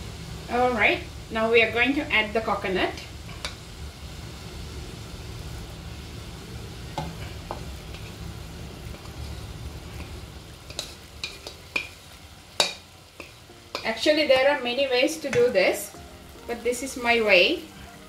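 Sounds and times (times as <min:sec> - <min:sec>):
gas flame hiss: 0:00.0 - 0:18.0
utensils knocking on pan: 0:10.7 - 0:12.0, 0:12.6 - 0:14.0, 0:15.2 - 0:15.7.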